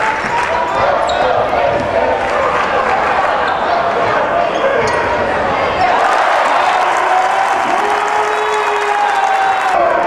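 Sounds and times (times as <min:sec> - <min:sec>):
crowd murmur: 0:00.0 - 0:07.9.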